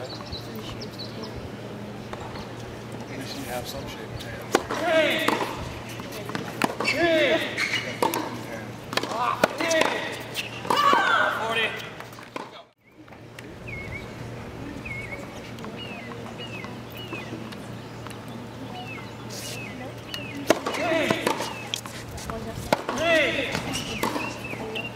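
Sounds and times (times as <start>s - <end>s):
tennis ball strikes: 4.5s - 12.5s, 20.1s - 22.0s, 22.7s - 24.9s
shoe squeaks on court: 7.6s - 8.3s.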